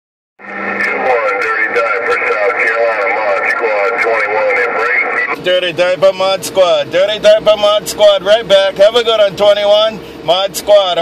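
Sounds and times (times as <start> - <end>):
radio hiss: 0.4 - 5.4
low steady hum: 0.4 - 11.0
voice over radio speaker: 0.4 - 11.0.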